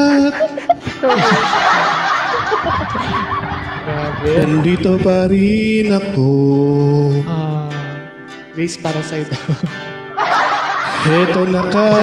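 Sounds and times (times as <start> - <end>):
people laughing together: 0.0 - 5.2, 9.2 - 12.0.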